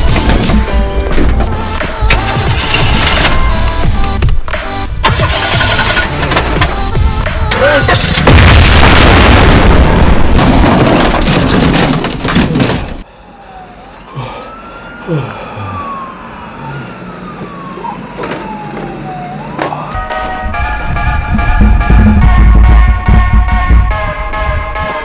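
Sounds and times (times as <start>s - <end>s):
music: 0.0s - 8.3s, 20.6s - 25.0s
slow wailing tone: 13.1s - 25.0s.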